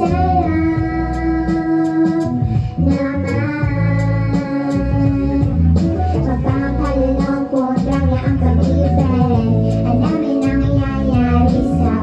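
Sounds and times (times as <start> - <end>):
instrumental accompaniment: 0.0 - 12.0
woman singing into microphone: 0.0 - 12.0.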